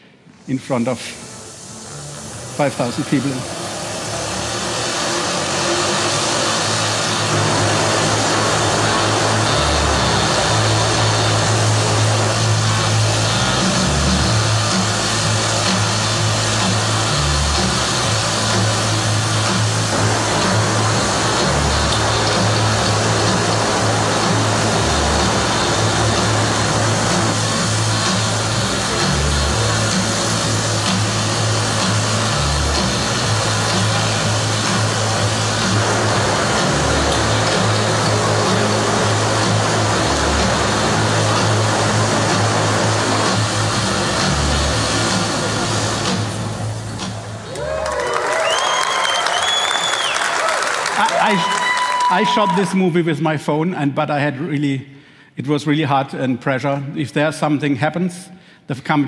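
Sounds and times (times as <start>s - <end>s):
multicopter rotors whirring: 1.2s - 47.4s
music with deep bass line: 5.8s - 47.4s.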